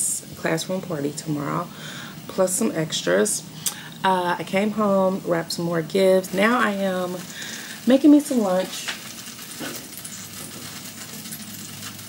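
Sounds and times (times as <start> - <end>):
dumplings sizzling in a skillet: 1.4 - 12.0
light crackles: 3.5 - 12.0.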